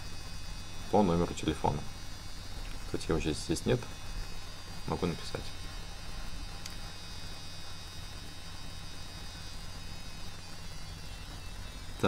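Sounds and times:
low electrical mains hum: 0:00.0 - 0:12.0
thin high whine: 0:00.0 - 0:12.0.

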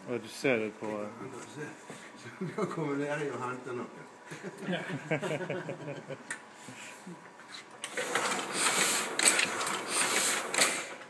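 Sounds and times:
printing press mechanical clatter: 0:07.8 - 0:11.0.

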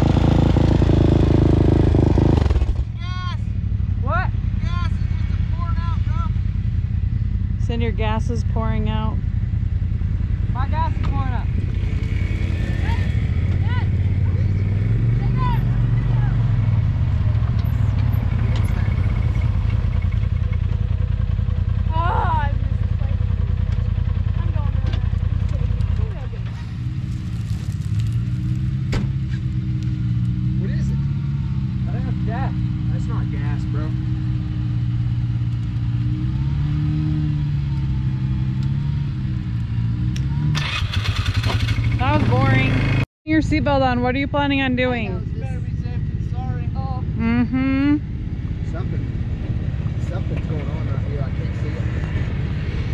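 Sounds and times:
car engine revving: 0:00.0 - 0:02.9, 0:10.5 - 0:20.6, 0:24.6 - 0:43.1.

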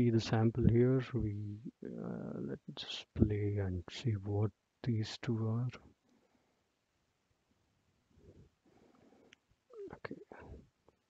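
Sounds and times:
man's voice: 0:00.0 - 0:05.8
faint low sounds: 0:00.0 - 0:05.9.

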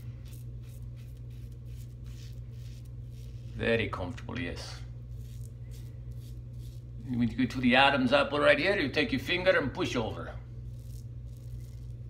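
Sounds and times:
razor scraping stubble: 0:00.0 - 0:04.0, 0:05.0 - 0:07.5, 0:10.6 - 0:12.0.

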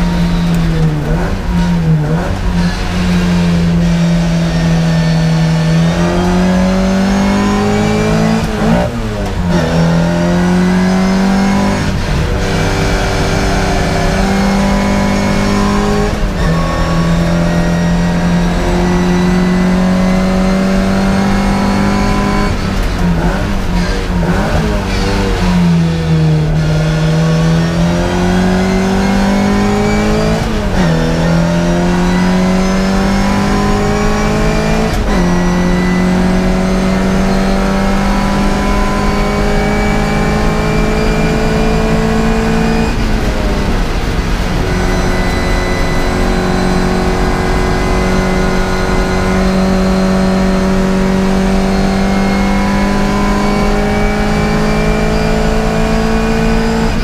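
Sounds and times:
race car engine revving: 0:00.0 - 0:57.0.

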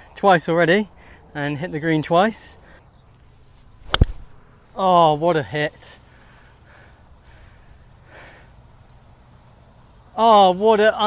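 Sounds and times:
faint hiss: 0:00.0 - 0:11.0.

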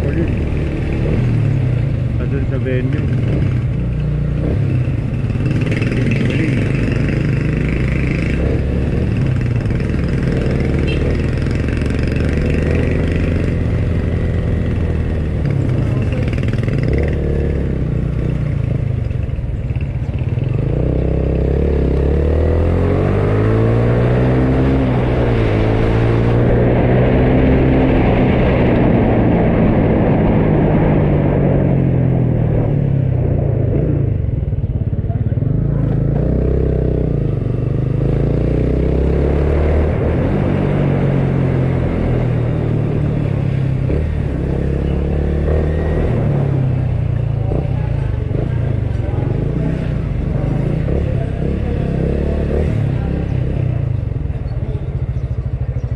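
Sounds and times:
motorcycle engine running: 0:00.0 - 0:28.2, 0:31.0 - 0:55.9.

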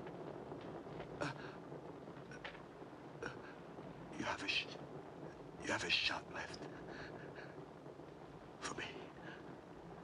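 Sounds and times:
man whispering: 0:03.2 - 0:04.8, 0:05.6 - 0:06.8, 0:08.6 - 0:09.5.

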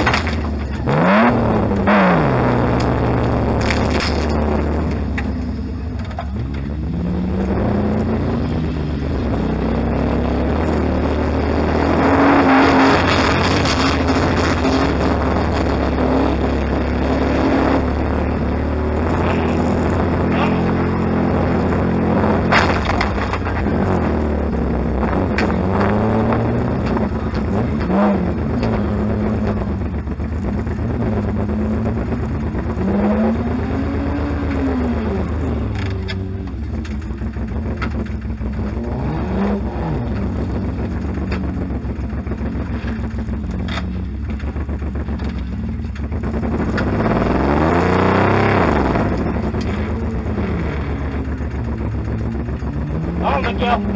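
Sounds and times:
car engine revving: 0:00.0 - 0:53.9
car impact bangs: 0:22.4 - 0:23.8.

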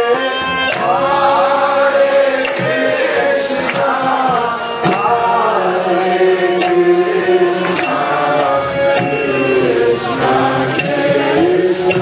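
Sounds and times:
group chanting: 0:00.1 - 0:12.0
hand cymbal strikes: 0:00.6 - 0:06.0, 0:06.6 - 0:12.0.

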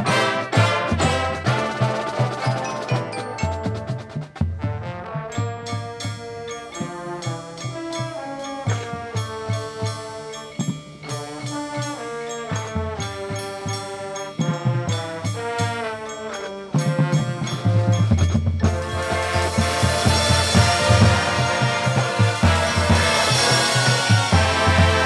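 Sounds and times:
brass: 0:00.0 - 0:25.0
drums: 0:00.0 - 0:25.0
marimba: 0:00.0 - 0:25.0.

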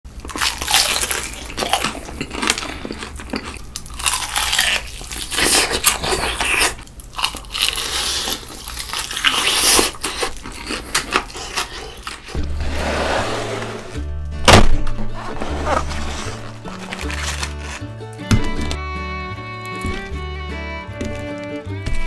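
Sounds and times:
fried chicken crunching: 0:00.1 - 0:12.4, 0:16.4 - 0:18.7.

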